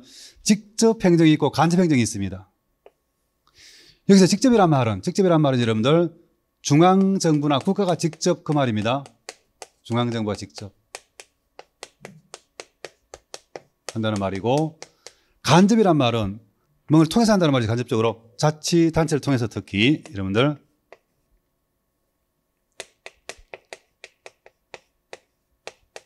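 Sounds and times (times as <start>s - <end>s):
chalk clicking on a board: 6.7s - 15.2s, 19.8s - 21.1s, 22.8s - 26.0s.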